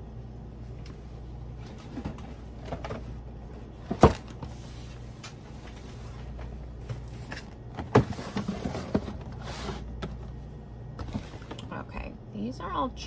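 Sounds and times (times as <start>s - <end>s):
box scraping slide: 8.0s - 10.0s.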